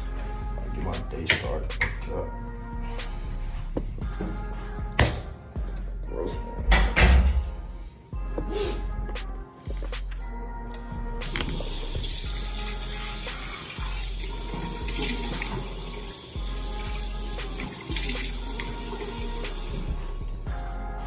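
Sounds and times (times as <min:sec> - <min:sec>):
background music: 0:00.0 - 0:21.0
water running from a tap: 0:11.2 - 0:20.0.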